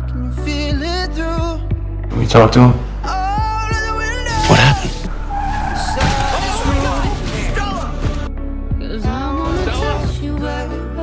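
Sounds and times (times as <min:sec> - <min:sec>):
car tyres skidding: 0:04.4 - 0:08.2.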